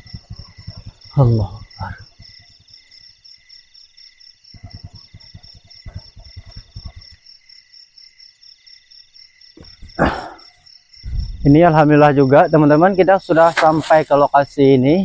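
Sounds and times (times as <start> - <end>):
crickets and insects chirping: 0.0 - 15.0.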